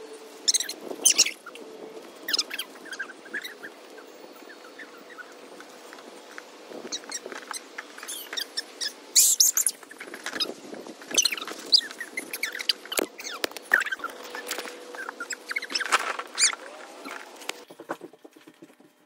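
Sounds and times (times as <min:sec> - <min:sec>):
high-pitched squeaks and chirps: 0:00.4 - 0:01.6, 0:02.2 - 0:18.4.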